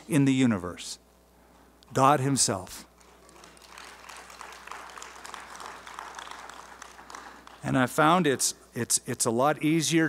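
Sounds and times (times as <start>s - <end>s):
congregation applauding: 2.9s - 8.4s.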